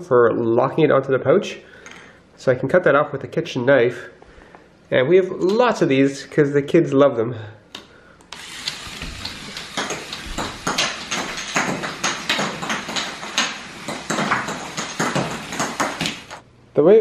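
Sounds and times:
toy gears clicking: 8.3s - 11.5s
motorized toy catapult firing: 8.3s - 16.4s.

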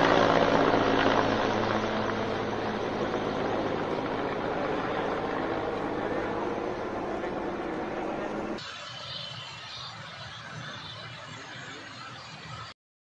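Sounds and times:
helicopter flying overhead: 0.0s - 12.7s.

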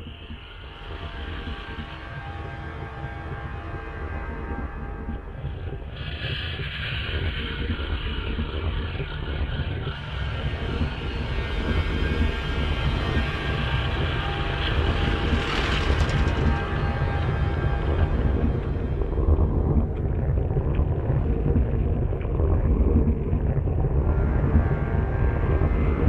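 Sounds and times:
low rumble: 0.0s - 26.0s.

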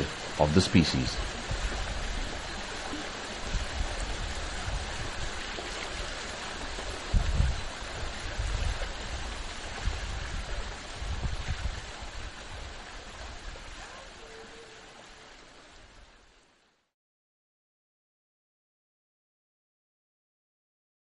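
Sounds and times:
steady rushing noise: 0.0s - 13.7s.

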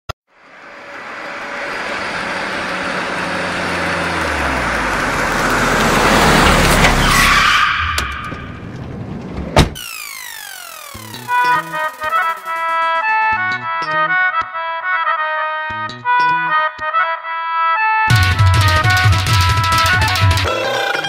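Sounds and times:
car engine revving: 0.4s - 9.5s
tyre squeal: 6.8s - 8.7s
sharp knock: 18.1s - 20.5s.

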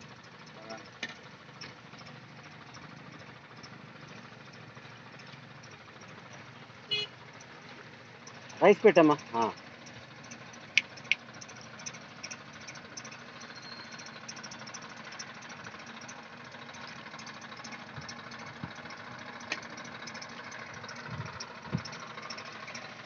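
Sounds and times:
tractor diesel engine running: 0.0s - 23.0s.

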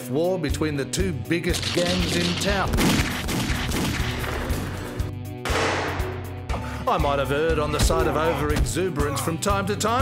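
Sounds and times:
film score music: 0.0s - 10.0s
pistol gunshots: 1.6s - 4.6s.

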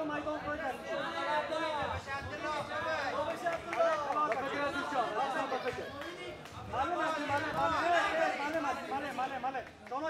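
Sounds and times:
voices talking over one another: 0.0s - 10.0s.

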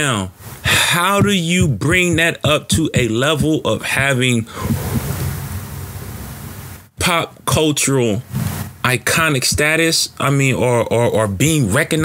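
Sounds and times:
person speaking: 0.0s - 5.6s
breathy exhale into microphone: 4.5s - 5.6s.

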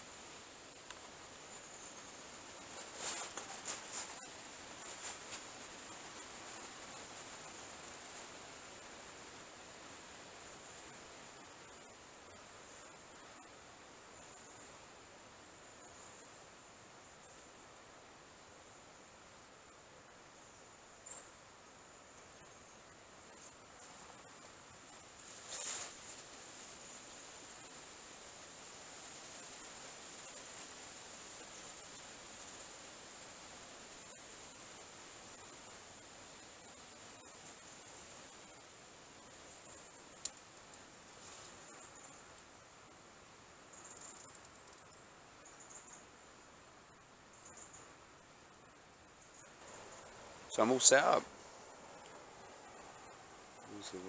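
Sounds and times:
faint steady hiss: 0.0s - 54.0s.

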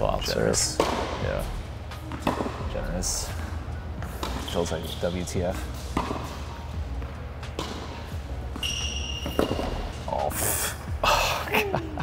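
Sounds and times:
racket hitting tennis ball: 0.8s - 1.2s, 1.9s - 2.7s, 4.0s - 4.8s, 5.8s - 10.0s
shoe squeak: 8.5s - 10.2s.

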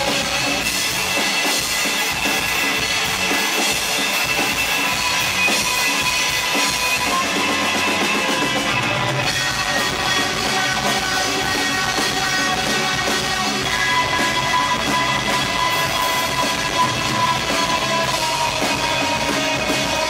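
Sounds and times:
drum beat: 0.0s - 20.0s
rock band playing live: 0.0s - 20.0s.

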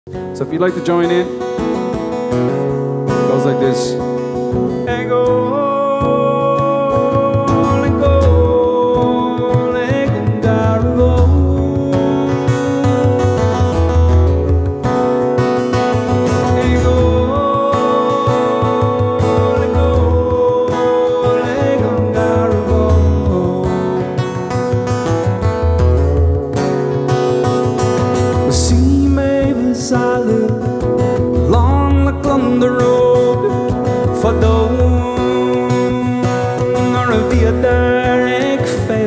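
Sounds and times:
strummed acoustic guitar: 0.1s - 39.0s
frame drum deep beat: 6.1s - 39.0s.

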